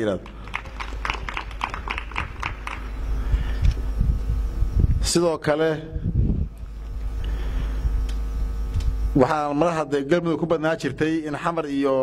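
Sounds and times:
audience hand clapping: 0.0 - 3.0
steady low hum: 0.0 - 12.0.

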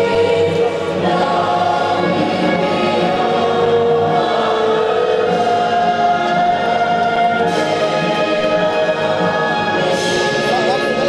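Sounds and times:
massed voices singing an anthem: 0.0 - 11.0.

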